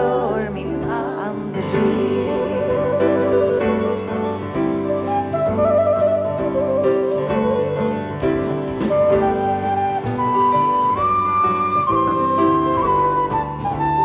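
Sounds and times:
wooden flute melody: 0:00.0 - 0:14.0.

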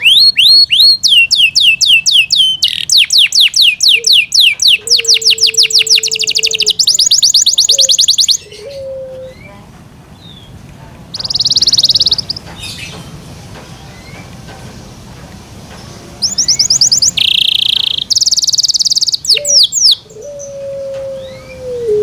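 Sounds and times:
canary singing: 0:00.0 - 0:14.4, 0:16.2 - 0:22.0
faint bird calls: 0:02.6 - 0:09.6.

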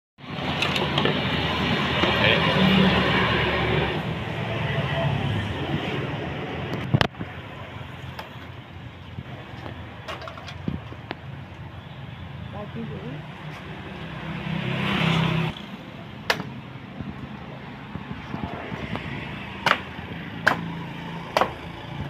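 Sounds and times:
busy outdoor background noise: 0:00.2 - 0:22.0.

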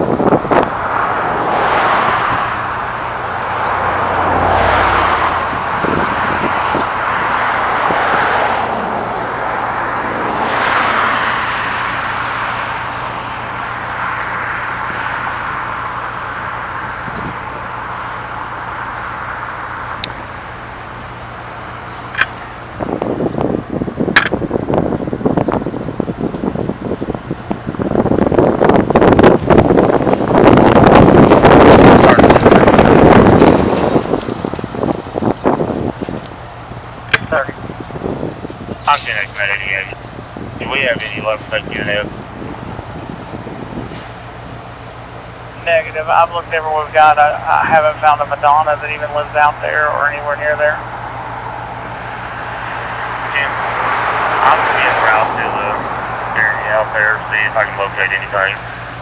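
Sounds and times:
wind buffeting microphone: 0:00.0 - 0:19.3, 0:19.9 - 0:47.0
passing vehicles: 0:00.0 - 0:59.0
steady low traffic hum: 0:00.0 - 0:59.0
truck passing close: 0:00.0 - 0:59.0.

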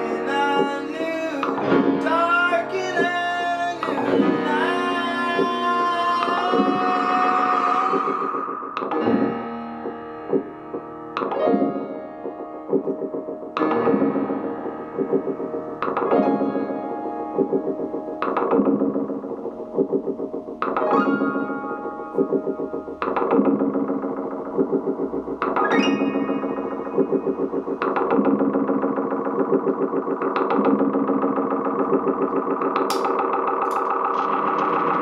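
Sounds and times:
electronic keyboard drone: 0:00.0 - 0:35.0
pulsing effected piano: 0:00.0 - 0:35.0.

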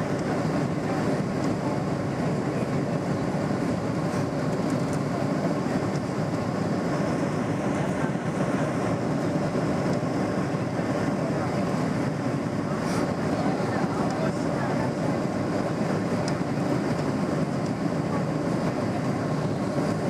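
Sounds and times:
aircraft cabin engine roar: 0:00.0 - 0:20.0.

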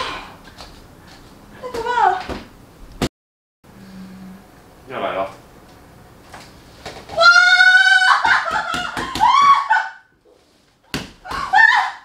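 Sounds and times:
woman screaming in pain: 0:07.2 - 0:10.0, 0:11.3 - 0:12.0.

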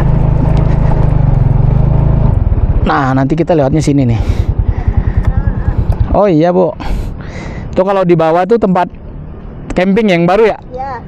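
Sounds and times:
motorcycle engine running: 0:00.0 - 0:07.3.

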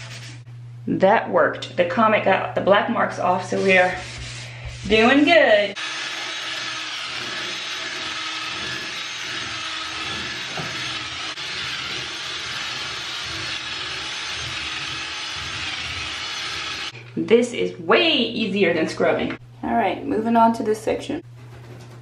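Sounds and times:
brush scrubbing bathtub: 0:00.0 - 0:00.4, 0:03.2 - 0:05.8
cordless drill running: 0:05.8 - 0:17.0.

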